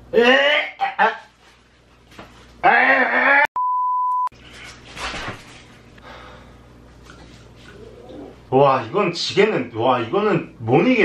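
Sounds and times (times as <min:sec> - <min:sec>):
censor bleep tone: 0:03.6 - 0:04.3.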